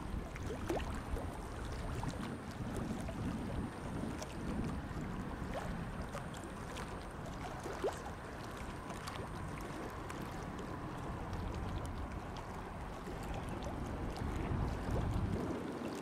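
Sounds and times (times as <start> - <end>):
water lapping at embankment: 0.0 - 16.0
wind buffeting microphone: 0.0 - 16.0.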